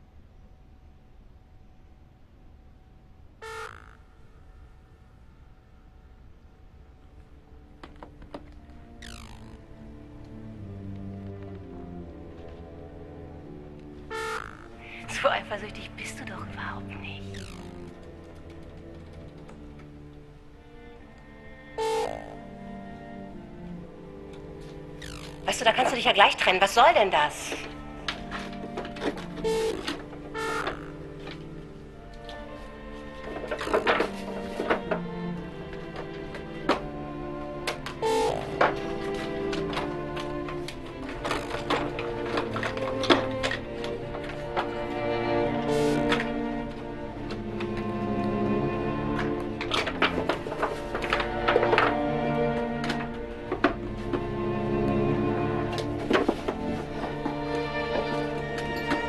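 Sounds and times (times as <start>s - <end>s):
steady background tone: 0.0s - 59.0s
short pitched tones: 3.4s - 5.0s, 8.8s - 9.7s, 14.1s - 16.0s, 16.6s - 18.0s, 21.8s - 22.5s, 25.0s - 28.0s, 29.4s - 31.2s, 38.0s - 38.6s
short electronic beep: 29.4s - 29.8s.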